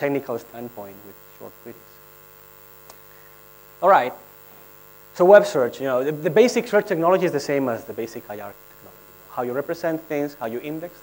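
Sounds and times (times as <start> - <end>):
man speaking: 0.0 - 2.0, 3.8 - 4.3, 5.2 - 11.0
electrical mains hum: 0.0 - 11.0.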